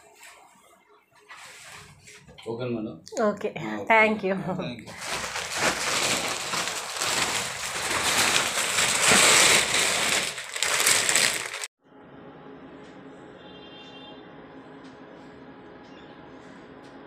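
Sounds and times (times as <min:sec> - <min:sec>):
loud crackling rustle: 0:04.9 - 0:11.7.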